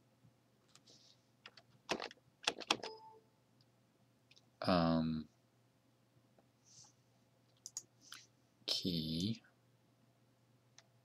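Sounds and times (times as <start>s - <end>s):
computer mouse and key clicks: 0.7s - 3.0s, 7.5s - 7.9s.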